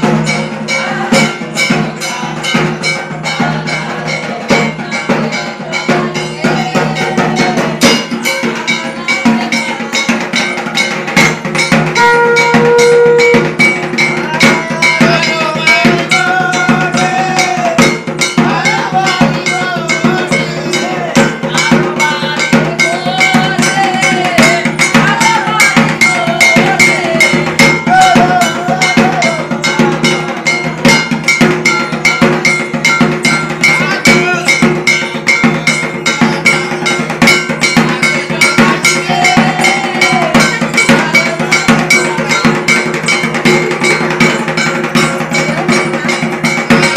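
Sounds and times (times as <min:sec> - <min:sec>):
drums beating: 0:00.0 - 0:46.9
metallic bell-like clangs: 0:00.0 - 0:46.9
held note: 0:11.5 - 0:18.0.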